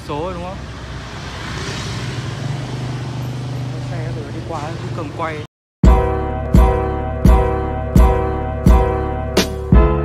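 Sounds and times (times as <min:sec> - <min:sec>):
motorbike passing: 0:00.0 - 0:05.5.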